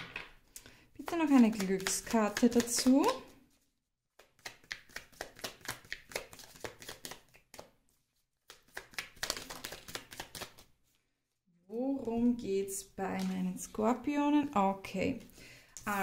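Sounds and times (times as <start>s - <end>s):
cards being shuffled: 1.0s - 3.3s, 4.2s - 11.0s.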